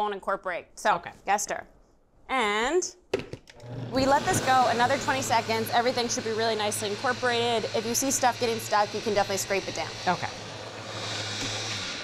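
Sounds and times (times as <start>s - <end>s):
blender motor running: 3.6s - 12.0s.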